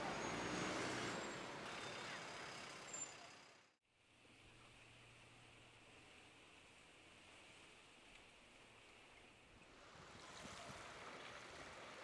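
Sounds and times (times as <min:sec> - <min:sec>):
street traffic noise: 0:00.0 - 0:03.7.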